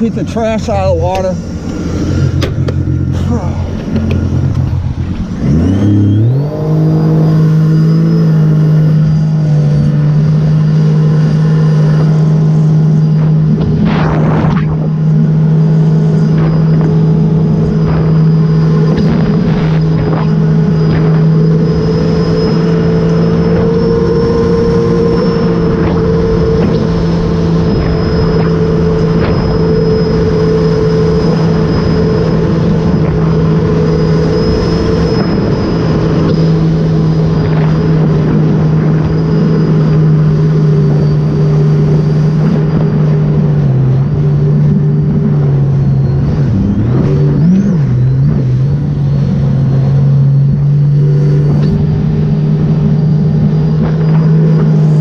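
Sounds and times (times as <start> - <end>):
high steady whine: 0.0 - 55.0
jet ski engine revving: 0.0 - 55.0.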